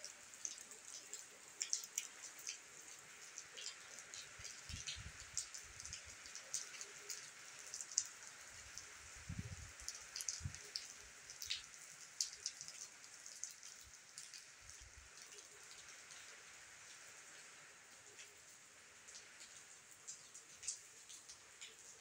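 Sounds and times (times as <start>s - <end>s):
light rain falling on tiles: 0.0s - 22.0s
sharp ticks of raindrops: 0.0s - 22.0s.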